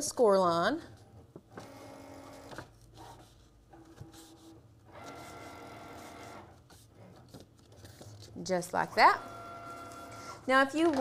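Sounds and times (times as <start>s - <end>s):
cardstock rustling and clicking: 6.6s - 8.3s.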